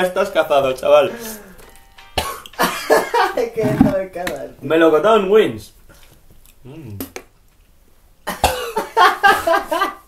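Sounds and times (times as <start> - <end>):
man coughing: 2.2 - 3.2, 8.3 - 9.0
laughter: 2.6 - 3.4, 8.7 - 10.0.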